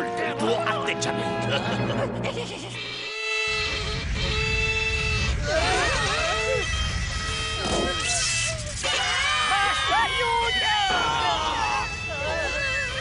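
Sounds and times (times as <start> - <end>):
harsh grating violin tone: 2.8 - 13.0
wavering cries of pain: 5.3 - 13.0.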